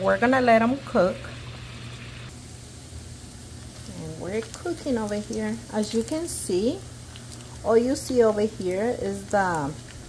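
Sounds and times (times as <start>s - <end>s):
bacon sizzling in a skillet: 0.0s - 10.0s
pot boiling and bubbling: 0.0s - 10.0s.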